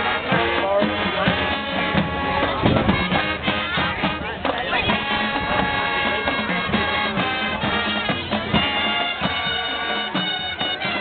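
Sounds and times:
drumline percussion: 0.0 - 11.0.

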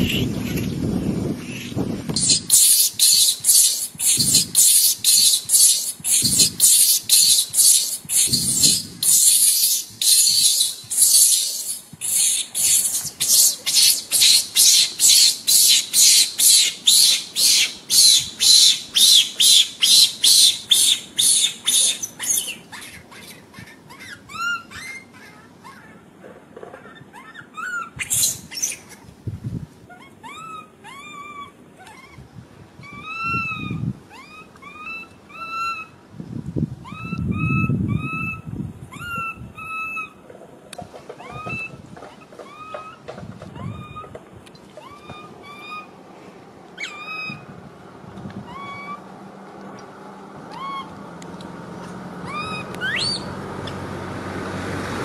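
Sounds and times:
whistle-like chirping calls: 2.2 - 23.0, 27.9 - 28.8, 52.3 - 53.3.

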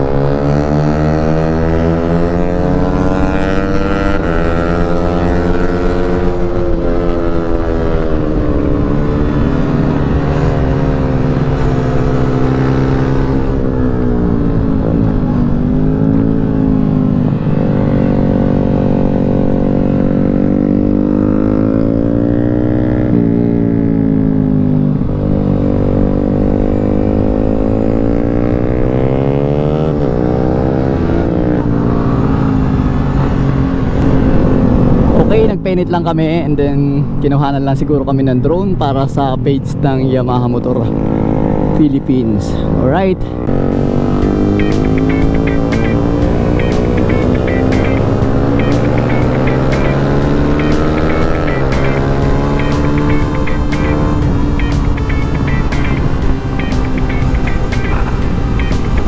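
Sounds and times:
motorcycle engine revving: 0.0 - 37.4, 38.1 - 59.0
wind noise rushing: 32.4 - 35.6.

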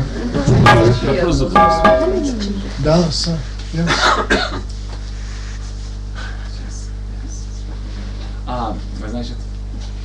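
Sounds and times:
steady low hum: 0.0 - 10.0
person coughing: 3.9 - 4.7.

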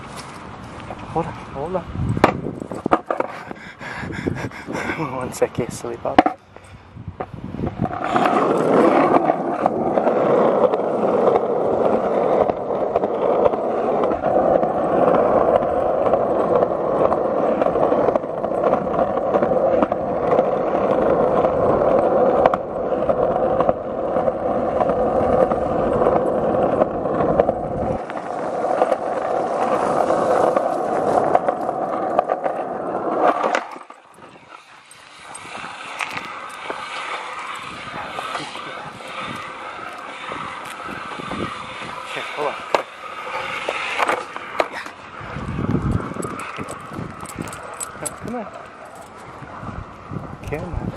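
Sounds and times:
wheels rolling over rough pavement: 0.0 - 50.9.

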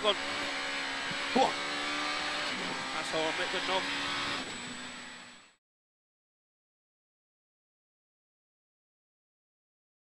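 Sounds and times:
car engine and road noise: 0.0 - 5.6.

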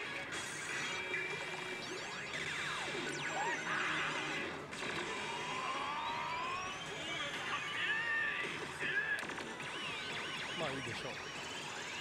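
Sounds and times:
slot machine electronic effects: 0.0 - 12.0.

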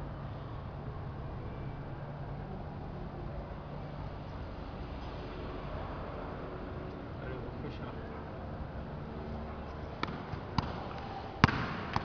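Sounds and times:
football touches: 9.6 - 12.0.

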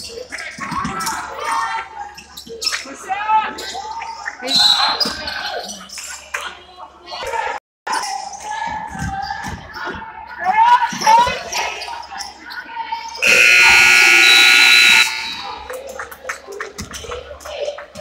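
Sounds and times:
voices shouting: 13.1 - 15.7
scoreboard buzzer blast: 13.2 - 15.6.

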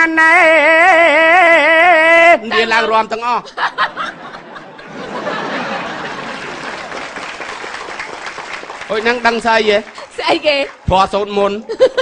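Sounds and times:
audience applauding: 4.8 - 11.7.

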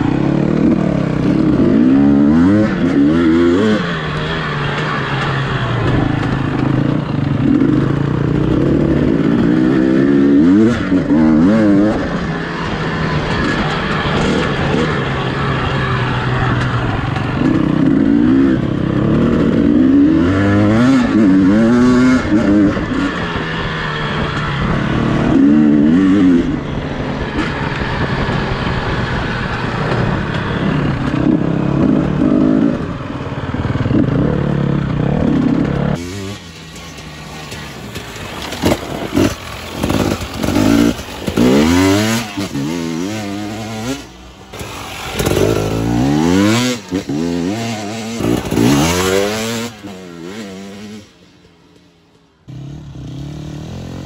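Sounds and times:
dirt bike engine revving: 0.0 - 54.0.

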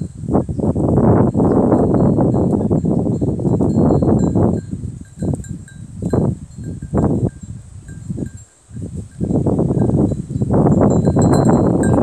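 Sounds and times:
faint light tinkling: 0.0 - 12.0.

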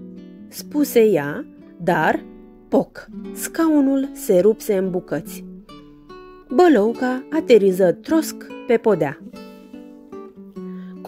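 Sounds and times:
plucked acoustic guitar: 0.0 - 11.0.

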